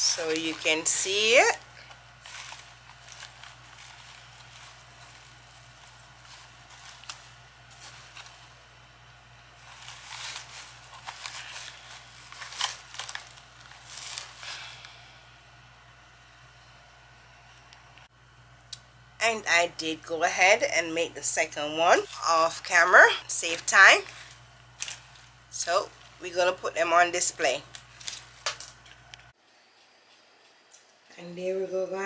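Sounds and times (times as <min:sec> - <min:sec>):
artificial flowers rustling: 0:00.0 - 0:15.0, 0:21.9 - 0:26.6, 0:27.2 - 0:29.1
low steady hum: 0:00.0 - 0:32.0.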